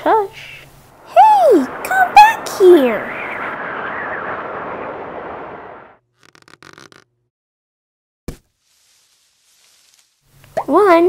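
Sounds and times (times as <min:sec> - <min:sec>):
steady rushing hiss: 0:00.0 - 0:05.9.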